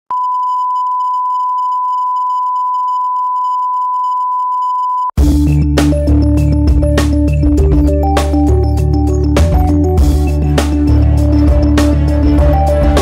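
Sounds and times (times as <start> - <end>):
steady pure beep: 0.1 - 5.2
electronic music with beat: 5.1 - 13.0.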